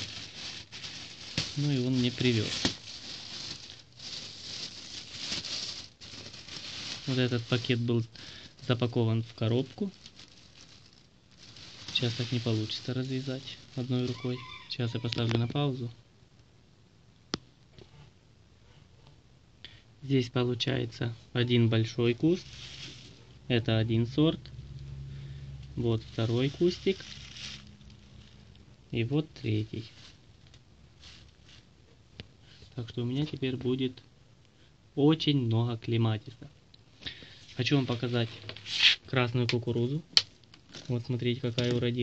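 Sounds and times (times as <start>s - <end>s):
plastic bag rustling and crinkling: 0.0s - 15.7s, 21.8s - 23.4s, 25.8s - 31.9s, 37.1s - 42.0s.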